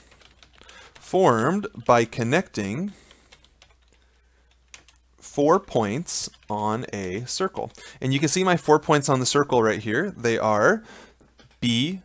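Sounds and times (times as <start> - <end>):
typing on computer keyboard: 0.0 - 2.1, 2.9 - 5.0, 5.7 - 8.4.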